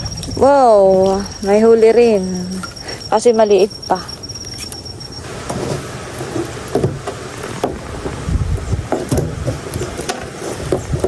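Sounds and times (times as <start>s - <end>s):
high insect trill: 0.0s - 5.3s.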